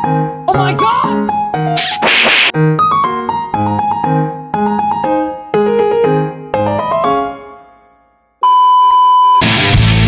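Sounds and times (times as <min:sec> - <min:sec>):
slapping pat sound effect: 0:01.8 - 0:02.5
light piano music: 0:02.5 - 0:08.2.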